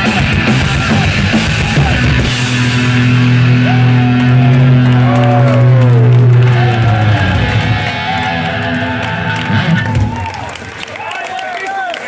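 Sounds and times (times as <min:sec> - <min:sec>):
punk band distorted chord: 0:00.0 - 0:10.4
high pitches sliding downward: 0:02.6 - 0:10.2.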